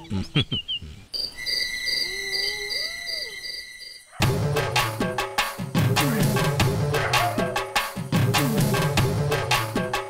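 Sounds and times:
insect chirping in pulses: 0.4s - 4.2s
cricket trill: 0.6s - 4.2s
wavering animal call: 0.6s - 4.3s.

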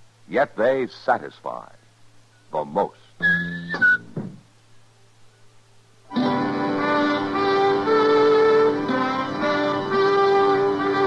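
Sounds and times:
orchestral strings playing held notes: 6.1s - 11.0s.

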